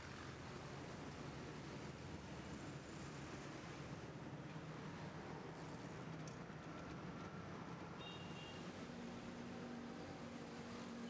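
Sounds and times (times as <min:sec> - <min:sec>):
faint street traffic: 0:00.0 - 0:11.0.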